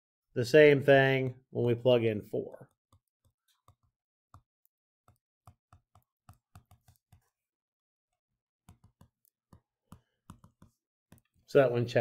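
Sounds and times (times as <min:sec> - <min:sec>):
stylus tapping on tablet screen: 0:02.9 - 0:07.4, 0:08.6 - 0:11.5.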